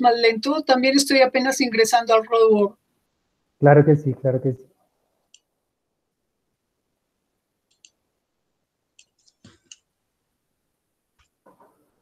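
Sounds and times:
computer mouse clicks: 7.7s - 8.0s, 9.0s - 9.9s.

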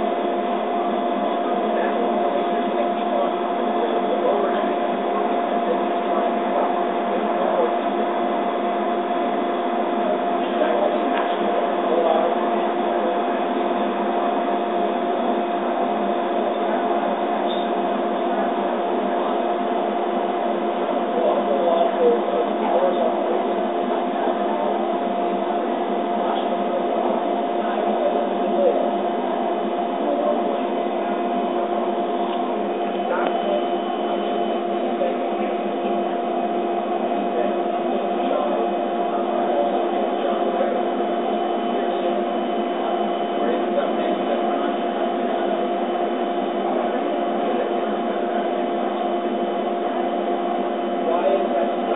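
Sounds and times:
laser cutter humming: 0.0s - 51.9s.

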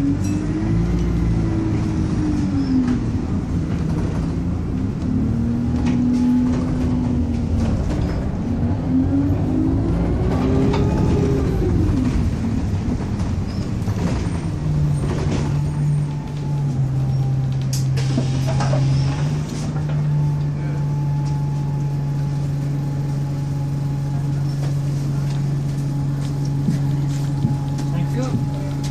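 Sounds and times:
bus engine and drivetrain: 0.0s - 28.9s.

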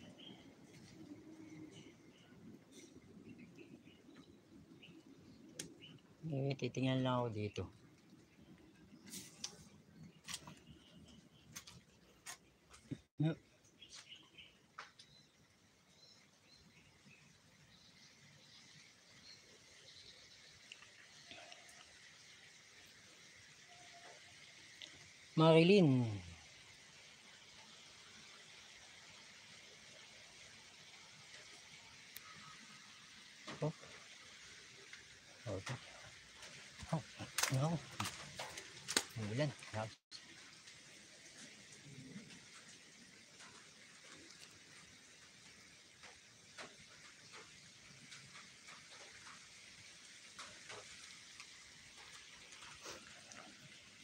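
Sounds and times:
outdoor background hiss: 0.0s - 54.0s.

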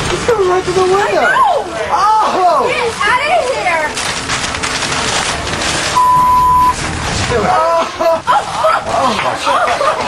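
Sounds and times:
noisy background: 0.0s - 10.0s
censor bleep tone: 6.0s - 6.8s.

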